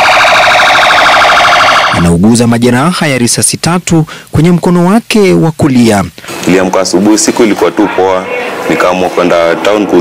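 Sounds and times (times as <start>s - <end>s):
police siren warbling: 0.0s - 2.3s.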